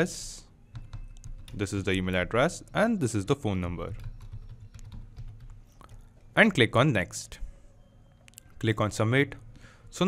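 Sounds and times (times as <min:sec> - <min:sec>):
computer keyboard clicks: 0:03.9 - 0:06.0.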